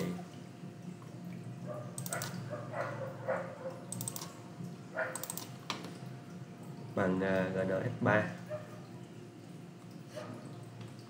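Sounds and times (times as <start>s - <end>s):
computer mouse clicking: 2.0s - 2.4s, 3.9s - 4.4s, 5.1s - 5.5s.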